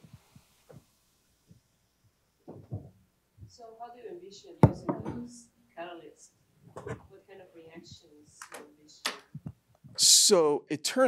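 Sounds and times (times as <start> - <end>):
sharp knock: 4.6 - 5.3.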